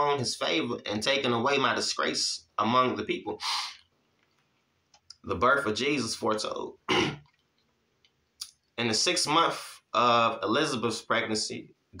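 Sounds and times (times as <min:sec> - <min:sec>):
man speaking: 0:00.0 - 0:03.8, 0:05.1 - 0:07.1, 0:08.8 - 0:12.0
man clearing throat: 0:06.9 - 0:07.2.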